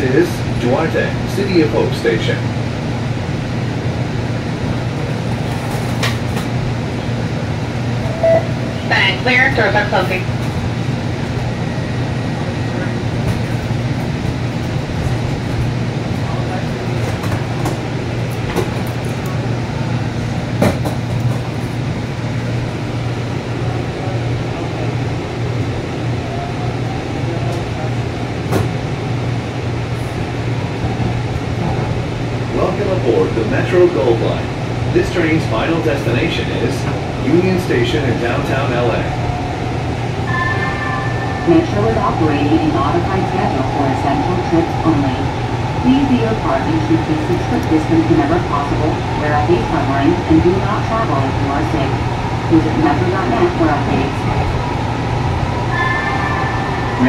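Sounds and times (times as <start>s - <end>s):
train running gear hum: 0.0s - 57.0s
voices talking: 32.6s - 57.0s.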